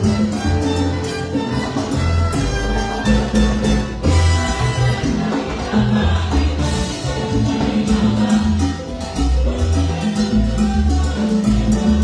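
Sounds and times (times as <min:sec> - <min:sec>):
bass line: 0:00.0 - 0:12.0
congas: 0:00.0 - 0:12.0
salsa band playing: 0:00.0 - 0:12.0.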